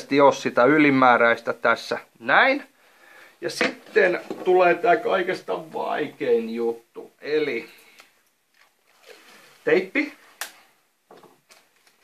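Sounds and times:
tape crinkling: 7.8 - 12.0.

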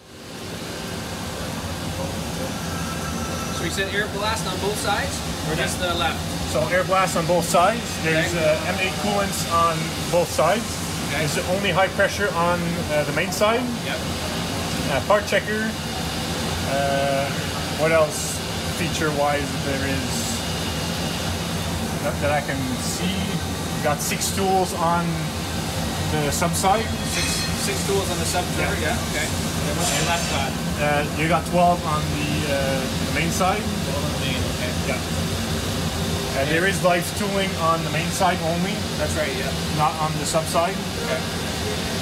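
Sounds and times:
coolant rushing: 0.0 - 42.0
low machine hum: 0.0 - 42.0
ventilation hiss: 0.0 - 42.0.

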